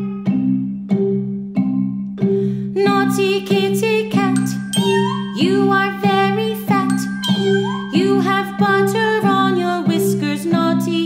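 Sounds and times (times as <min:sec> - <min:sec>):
bell-like melody: 0:03.6 - 0:09.9.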